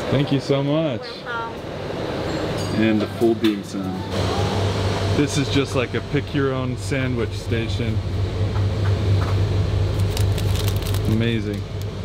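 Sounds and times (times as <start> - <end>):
room ventilation hum: 0.0 - 12.0.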